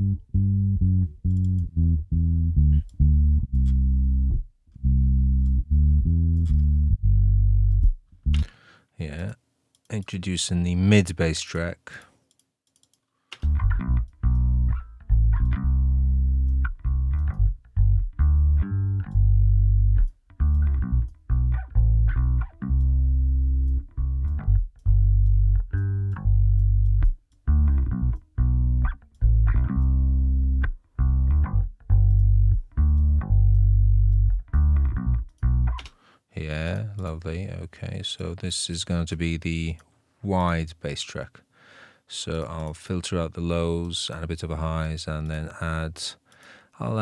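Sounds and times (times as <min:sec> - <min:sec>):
bass guitar plucked notes: 0:00.0 - 0:08.5, 0:13.4 - 0:35.9.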